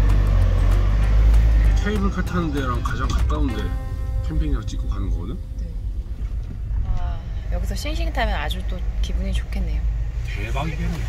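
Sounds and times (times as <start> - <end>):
vehicle engine and road noise: 0.0 - 11.0
man's voice: 1.7 - 5.5.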